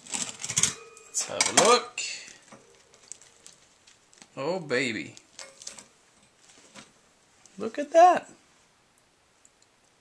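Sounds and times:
bread crust crackling: 0:00.0 - 0:08.1.

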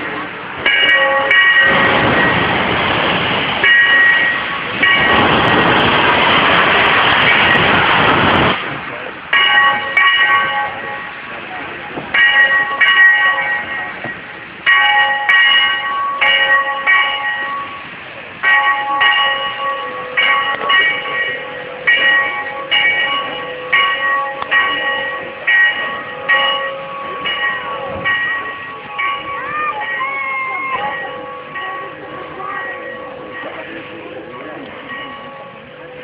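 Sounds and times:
locomotive bell ringing: 0:00.0 - 0:08.1, 0:09.3 - 0:36.0.

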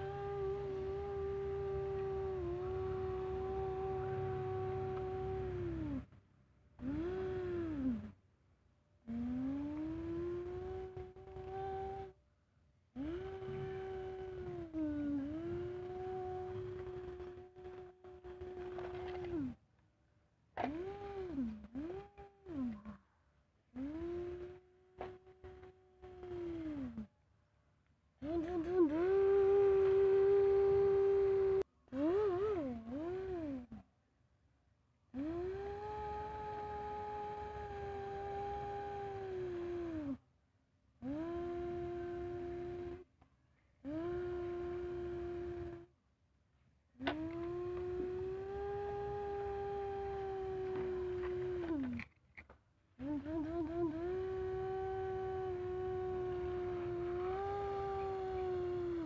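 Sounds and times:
person humming engine noises: 0:00.0 - 0:06.2, 0:06.8 - 0:08.2, 0:09.1 - 0:12.2, 0:13.0 - 0:19.6, 0:20.6 - 0:23.0, 0:23.8 - 0:27.1, 0:28.2 - 0:33.8, 0:35.2 - 0:40.2, 0:41.0 - 0:43.1, 0:43.8 - 0:45.9, 0:47.0 - 0:52.1, 0:53.0 - 0:59.0.

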